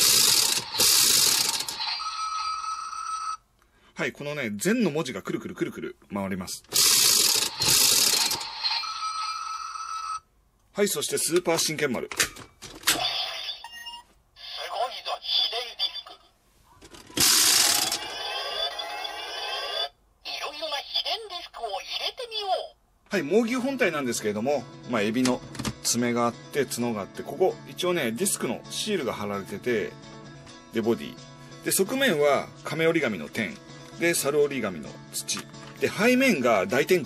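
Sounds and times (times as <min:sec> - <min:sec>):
toy sword spin mechanism whirring: 0:00.0 - 0:02.0, 0:06.7 - 0:08.8, 0:17.2 - 0:18.6
toy electronic sound effects: 0:00.0 - 0:02.7, 0:06.8 - 0:09.3, 0:12.9 - 0:16.2, 0:17.0 - 0:21.1.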